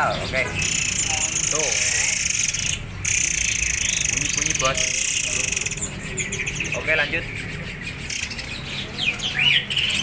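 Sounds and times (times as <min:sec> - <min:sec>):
small songbirds chirping: 0:00.0 - 0:10.0.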